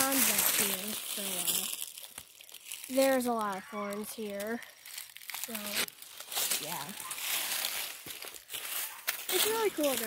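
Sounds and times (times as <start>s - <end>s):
footsteps crunching dry leaves: 0.0s - 10.0s.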